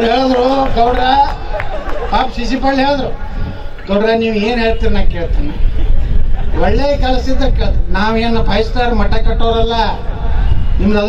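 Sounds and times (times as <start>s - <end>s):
man speaking over public address: 0.0s - 5.9s, 6.5s - 11.0s.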